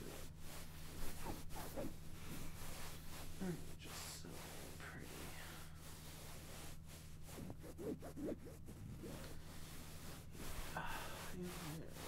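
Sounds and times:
fabric rustling on microphone: 0:00.0 - 0:12.0
steady low hum: 0:00.0 - 0:12.0.

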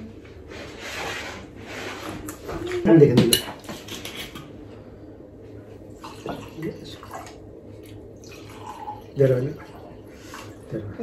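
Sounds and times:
wine pouring into glass: 0:06.0 - 0:07.4, 0:08.2 - 0:10.8.

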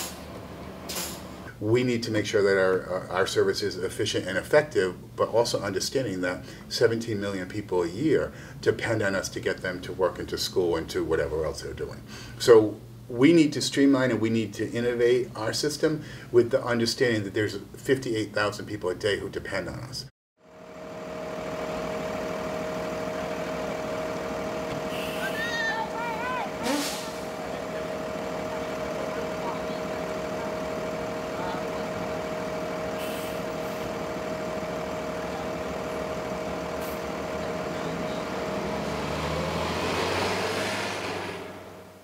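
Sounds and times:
bus engine idling: 0:00.0 - 0:01.5, 0:20.4 - 0:42.0
short air hiss: 0:26.6 - 0:27.3, 0:33.0 - 0:33.8.

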